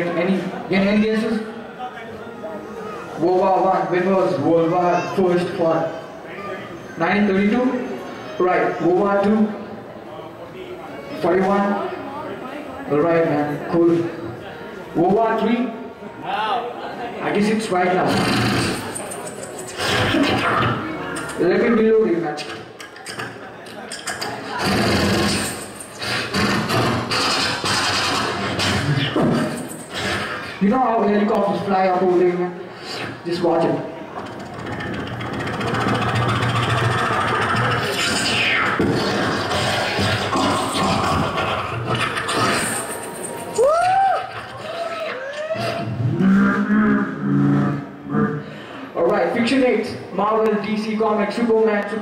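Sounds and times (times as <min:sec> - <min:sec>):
beatboxing through microphone: 0:18.0 - 0:18.9, 0:19.5 - 0:31.7, 0:32.7 - 0:43.0, 0:45.6 - 0:48.5.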